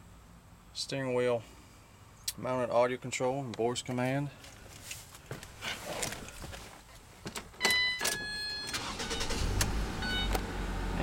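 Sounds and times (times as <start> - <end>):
dashboard chime: 7.6 - 8.8
car engine starting and idling: 7.7 - 11.0.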